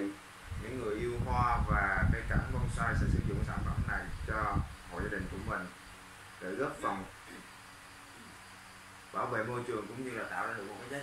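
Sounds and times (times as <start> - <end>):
low steady hum: 0.0 - 11.0
soft high hiss: 0.0 - 11.0.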